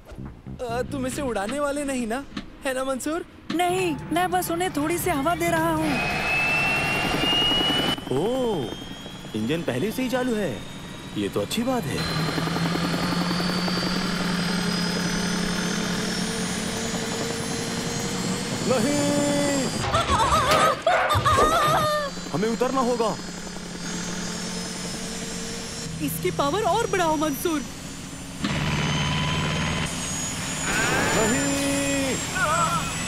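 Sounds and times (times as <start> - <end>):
helicopter rotor chop: 1.0 - 33.0
helicopter engine whine: 1.4 - 33.0.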